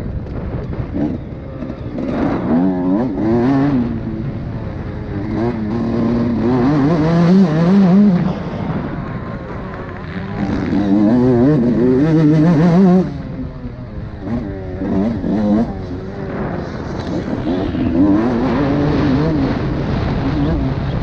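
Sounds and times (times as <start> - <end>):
two-stroke motorbike engine revving: 0.0 - 21.0.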